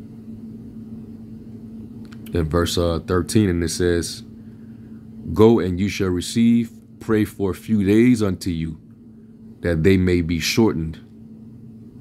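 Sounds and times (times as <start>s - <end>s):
constant held tone: 0.0s - 12.0s
low background hum: 0.0s - 12.0s.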